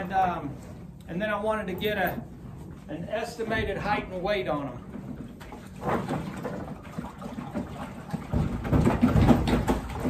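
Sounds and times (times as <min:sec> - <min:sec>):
horse knocking water trough: 0:04.9 - 0:10.0.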